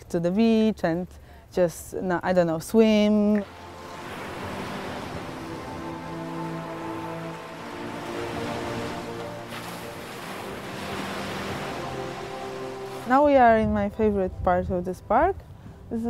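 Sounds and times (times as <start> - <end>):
soft music of held notes: 3.0 - 16.0
waves breaking on beach: 3.4 - 13.5.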